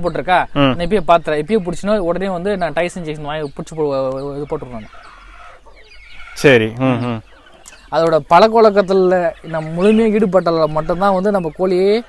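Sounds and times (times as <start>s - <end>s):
chickens clucking faintly: 0.0s - 12.0s
man's voice: 6.4s - 7.3s.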